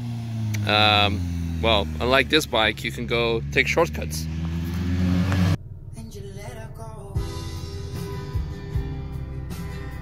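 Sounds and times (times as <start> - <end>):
vehicle engine humming: 0.0 - 10.0
quiet low rumble: 5.3 - 10.0.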